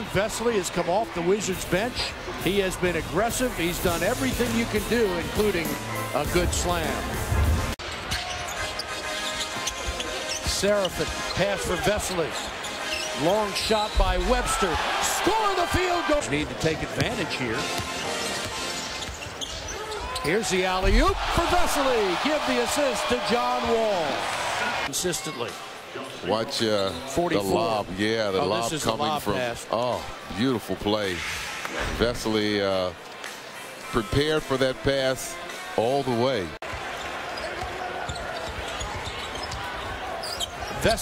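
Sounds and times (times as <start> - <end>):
arena music over loudspeakers: 0.4 - 7.8, 8.6 - 19.0, 20.3 - 25.6, 33.3 - 36.6.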